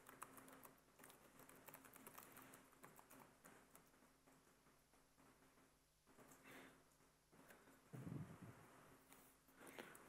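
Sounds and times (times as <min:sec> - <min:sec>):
typing on a keyboard: 0:00.0 - 0:04.6.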